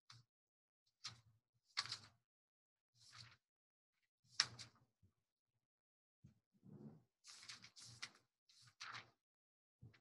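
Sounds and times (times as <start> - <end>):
book pages turning: 1.0 - 2.2, 3.0 - 3.4, 4.3 - 4.8, 7.2 - 9.2.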